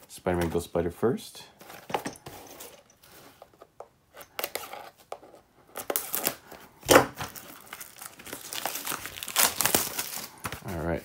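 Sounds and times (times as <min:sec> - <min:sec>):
plastic shrink-wrap tearing: 0:07.2 - 0:10.5
plastic crinkling in hands: 0:07.2 - 0:10.9.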